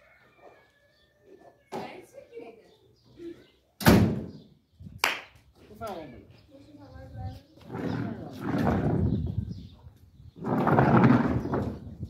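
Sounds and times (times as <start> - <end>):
car hood slammed shut: 3.8 - 4.3.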